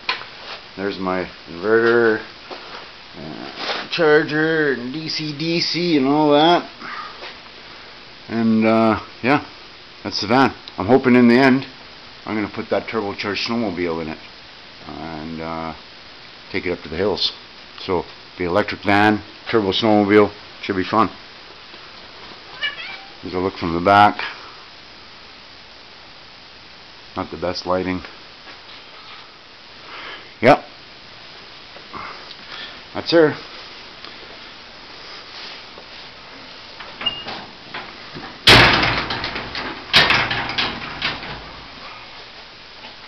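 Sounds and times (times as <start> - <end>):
cat meowing: 22.5 - 23.2
van door clunking open: 36.9 - 41.8
rattling clicks: 38.5 - 41.7.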